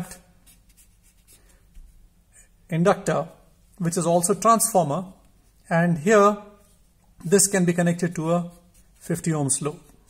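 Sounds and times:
marker scratching on paper: 0:00.0 - 0:02.0, 0:06.6 - 0:10.0.

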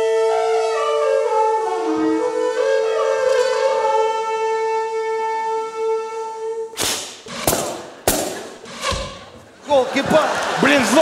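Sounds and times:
heavy thumps: 0:06.8 - 0:09.6.

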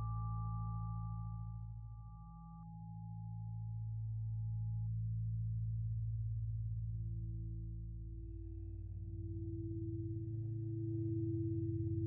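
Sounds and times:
low pulsing hum: 0:00.0 - 0:12.0.

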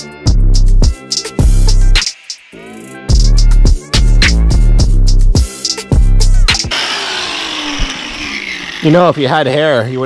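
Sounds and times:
background music with beat: 0:00.0 - 0:06.8
angle grinder winding down: 0:06.6 - 0:10.0.

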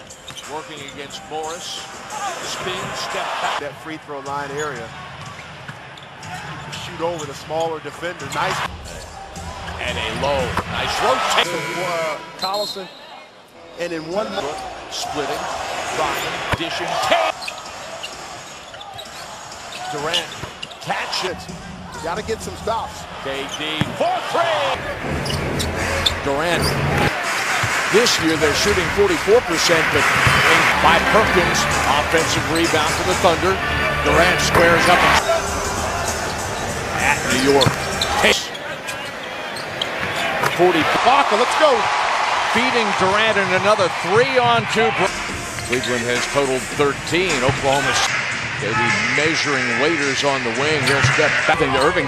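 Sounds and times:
crowd noise: 0:00.0 - 0:52.0
crowd murmur: 0:21.2 - 0:41.2
basketball bouncing on court: 0:23.7 - 0:24.0.

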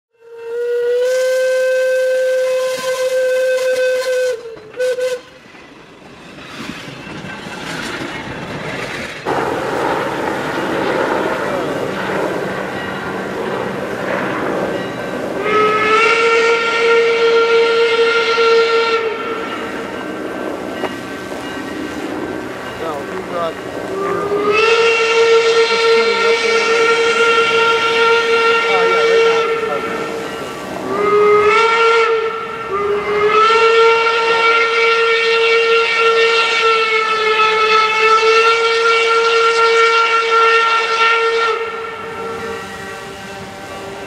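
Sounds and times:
steam locomotive whistle blasts: 0:00.2 - 0:05.5, 0:14.8 - 0:20.1, 0:22.8 - 0:44.0
rushing noise of train: 0:00.2 - 0:44.0.

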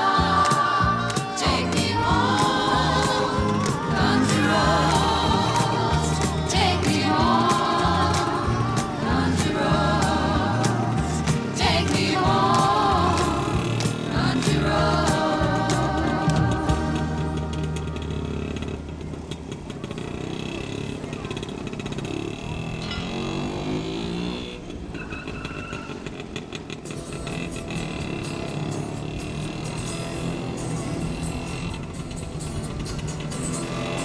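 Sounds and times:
music: 0:00.0 - 0:19.0, 0:26.9 - 0:34.0
voices: 0:00.0 - 0:23.9
car engine revving: 0:00.0 - 0:24.8.

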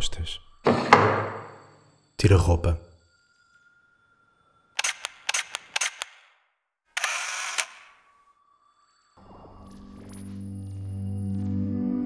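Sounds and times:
camera shutter clicks: 0:04.8 - 0:06.3, 0:07.0 - 0:07.9.

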